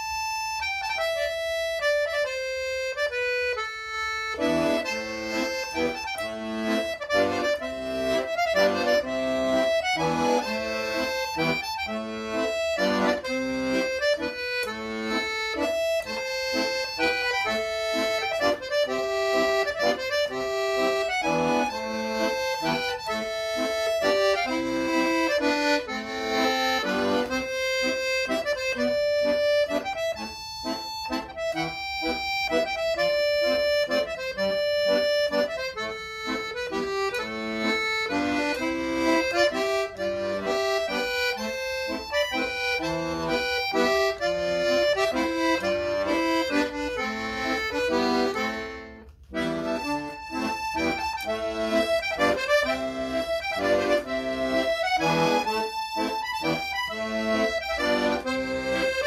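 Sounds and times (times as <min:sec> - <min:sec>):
accordion playing folk tune: 0:00.0 - 0:59.0.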